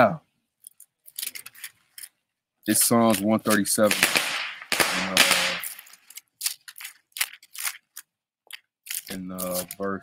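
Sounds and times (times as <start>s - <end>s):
firecrackers popping: 2.7s - 6.2s
firecracker hissing: 3.8s - 6.1s.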